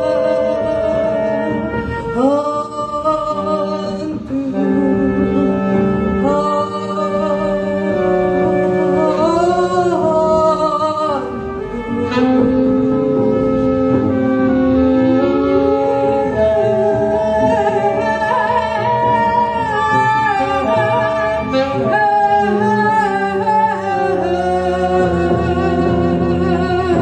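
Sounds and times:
double bass: 0.0s - 27.0s
saxophone: 0.0s - 27.0s.

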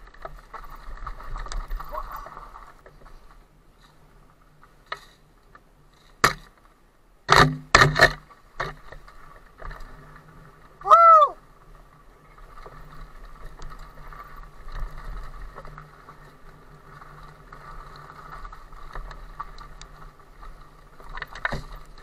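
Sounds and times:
tyre and rattle noise: 0.0s - 6.7s, 7.3s - 10.8s, 11.6s - 22.0s.

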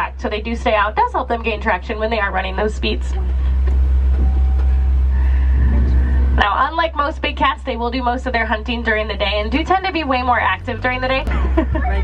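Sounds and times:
truck engine rumble: 0.0s - 12.0s.

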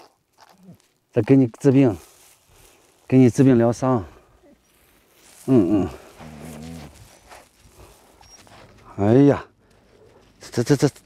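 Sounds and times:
brush scratching through fur: 4.7s - 8.8s.

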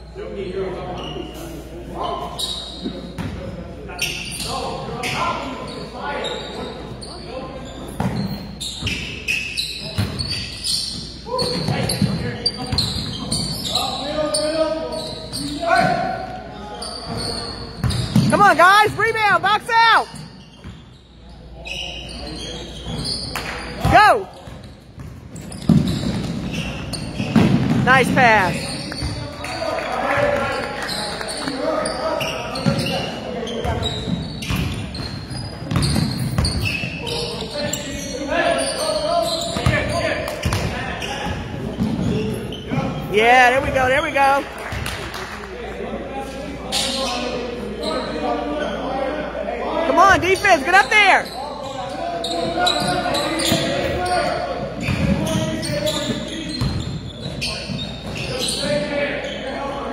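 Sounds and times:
chatter of players and spectators: 0.0s - 59.9s
sneaker squeaks: 0.4s - 44.9s, 46.5s - 49.0s, 49.8s - 59.9s
basketball bouncing on court: 17.8s - 18.4s, 23.8s - 29.2s, 32.6s - 32.9s, 33.6s - 36.7s, 39.6s - 42.2s, 54.8s - 58.3s.

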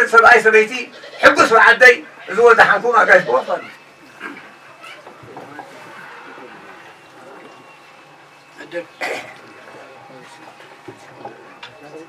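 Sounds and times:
faint voices talking quietly: 2.2s - 12.0s.

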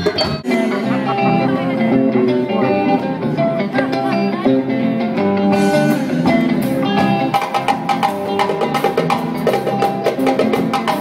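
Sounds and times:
live band playing: 0.0s - 11.0s
picked electric guitar melody: 0.0s - 11.0s.

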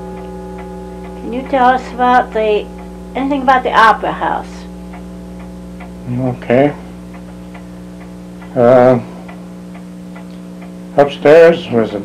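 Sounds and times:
electrical hum: 0.0s - 12.0s
pendulum clock ticking: 0.0s - 12.0s.

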